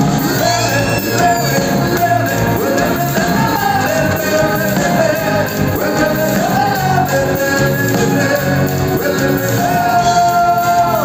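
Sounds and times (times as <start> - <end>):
live pop-rock band: 0.0 - 11.0
voices singing: 0.0 - 11.0.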